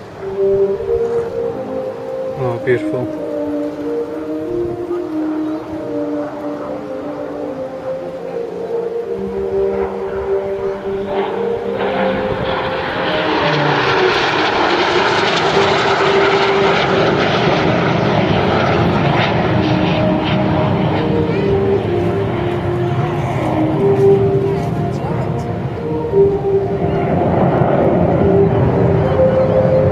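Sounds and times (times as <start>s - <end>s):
jet flying past: 0.0s - 29.9s.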